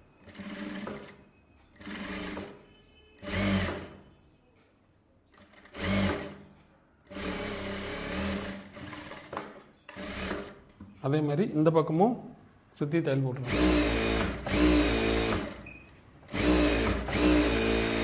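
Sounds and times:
sewing machine stitching: 0:00.2 - 0:01.2, 0:01.8 - 0:02.6, 0:03.2 - 0:04.0, 0:05.3 - 0:06.4, 0:07.1 - 0:10.6, 0:13.4 - 0:15.6, 0:16.3 - 0:18.0.

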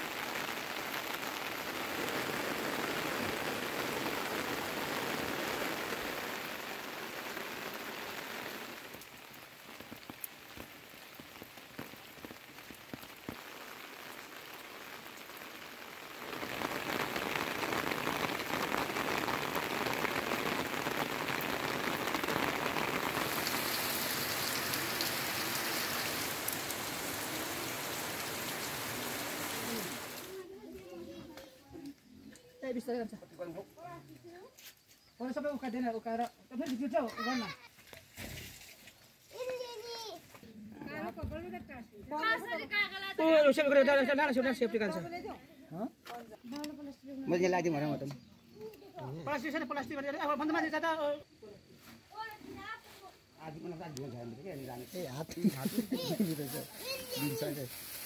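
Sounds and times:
rain falling: 0:00.0 - 0:51.2, 0:52.2 - 0:58.0.

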